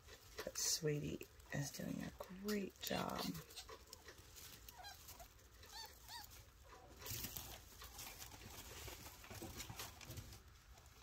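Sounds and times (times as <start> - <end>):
rustling of hay: 0.0 - 11.0
faint animal squeaks: 4.7 - 6.5.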